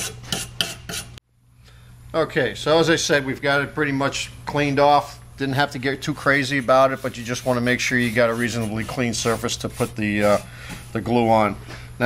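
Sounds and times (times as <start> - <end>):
faint room hum: 0.0 - 12.0
abrasive scrubbing on metal: 6.1 - 11.0.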